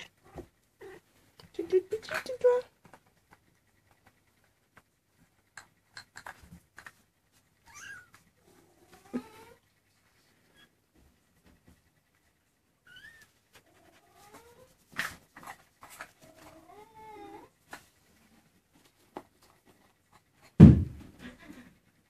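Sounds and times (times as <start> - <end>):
kittens mewing: 7.6 - 9.7
sharp knocks: 20.6 - 21.0.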